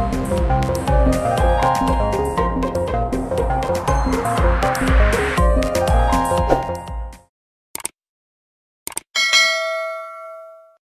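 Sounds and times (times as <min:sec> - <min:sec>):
bright bell chime: 0:09.2 - 0:10.8.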